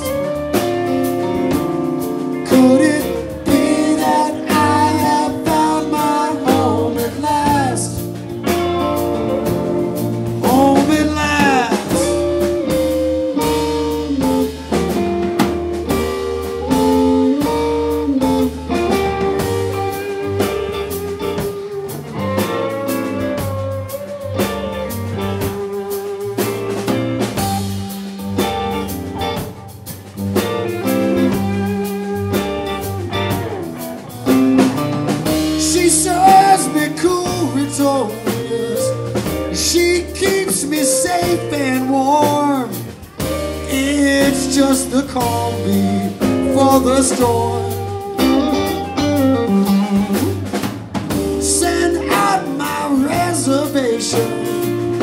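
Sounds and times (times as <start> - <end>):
electric guitar lead bending notes: 0.0 - 55.0
live blues band playing: 0.0 - 55.0.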